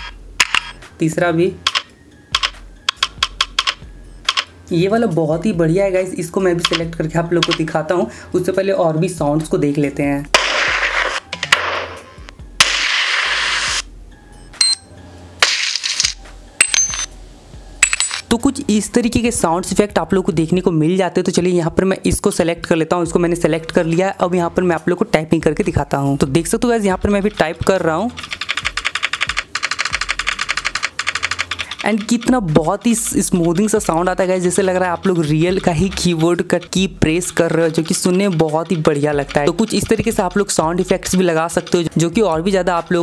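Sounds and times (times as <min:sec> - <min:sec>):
simulated keyboard key clicks: 0:01.7 - 0:04.5, 0:06.6 - 0:06.8, 0:07.4 - 0:07.6
gun and explosion sound effects: 0:10.3 - 0:12.0, 0:12.6 - 0:13.6
metallic clinks of bullet casings: 0:15.7 - 0:17.1, 0:17.8 - 0:18.3.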